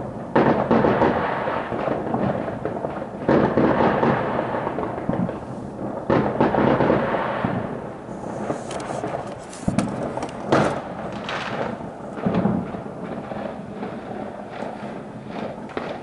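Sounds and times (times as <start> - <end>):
fireworks booming: 0.0 - 16.0
fireworks crackling: 0.0 - 16.0.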